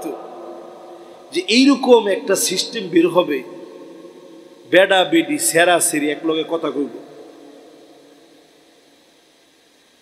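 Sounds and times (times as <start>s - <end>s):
speech echo through loudspeakers: 0.0s - 8.2s
faint steady hiss: 0.0s - 10.0s.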